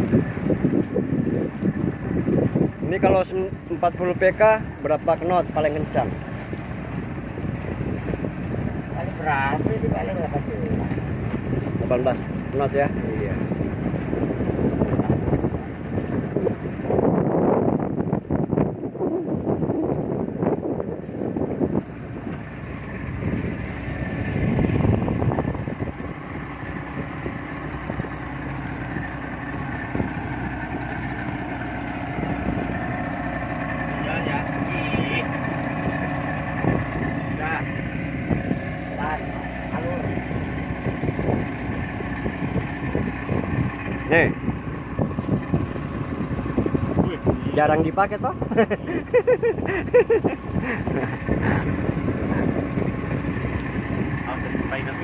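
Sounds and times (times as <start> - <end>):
outboard motor running: 0.0 - 55.0
water rushing past hull: 0.0 - 55.0
wind gusts on microphone: 0.0 - 55.0.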